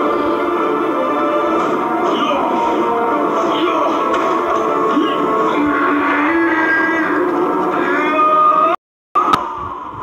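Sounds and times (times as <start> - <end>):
film music with held notes: 0.0 - 9.4.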